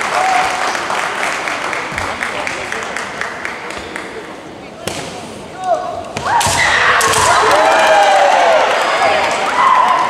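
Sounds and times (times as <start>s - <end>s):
bamboo swords striking: 4.8s - 5.3s.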